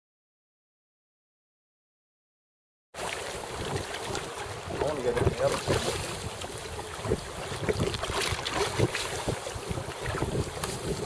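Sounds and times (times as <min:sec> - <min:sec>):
river water washing around canoe: 0:03.0 - 0:11.0
wind buffeting microphone: 0:03.4 - 0:11.0.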